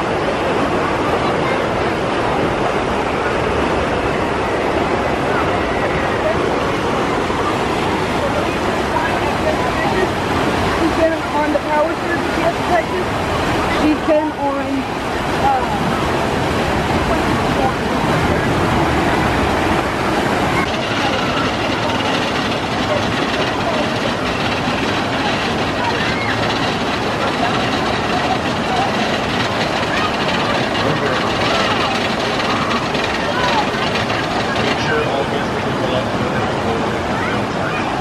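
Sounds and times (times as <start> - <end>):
whitewater rushing down channel: 0.0 - 38.0.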